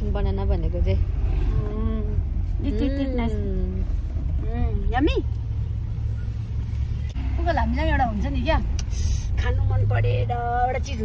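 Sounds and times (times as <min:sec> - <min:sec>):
car cabin rumble: 0:00.0 - 0:11.0.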